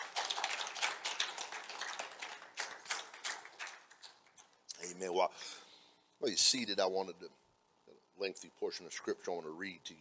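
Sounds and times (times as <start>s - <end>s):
crowd applauding: 0.0s - 4.5s.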